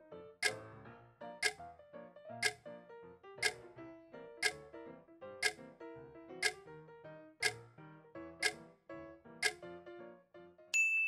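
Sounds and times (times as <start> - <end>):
sharp ticks: 1.4 - 1.6, 6.4 - 6.6, 7.4 - 7.6
bright bell ding: 10.8 - 11.0.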